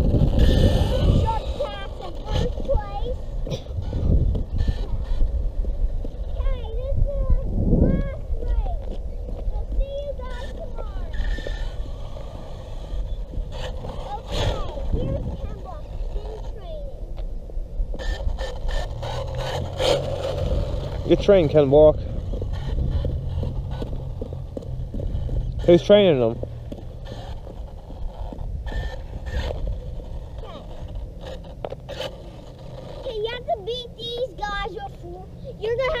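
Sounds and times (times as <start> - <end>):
wind buffeting microphone: 0.0 - 36.0.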